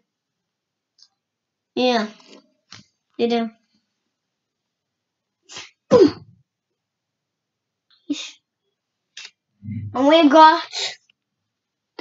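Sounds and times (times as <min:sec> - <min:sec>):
person sneezing: 0:05.5 - 0:06.3.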